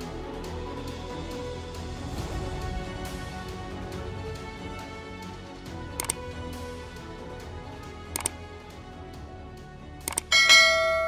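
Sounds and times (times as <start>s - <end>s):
soft background music: 0.0s - 11.0s
quick clicks: 6.0s - 6.3s, 8.1s - 8.4s, 10.0s - 10.3s
notification bell chime: 10.3s - 11.0s.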